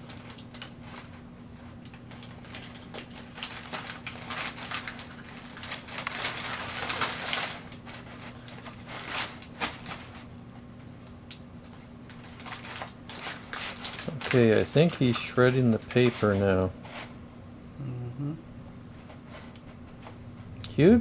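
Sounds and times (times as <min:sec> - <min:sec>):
packing paper crinkling and rustling: 0:00.0 - 0:10.7, 0:11.3 - 0:17.1.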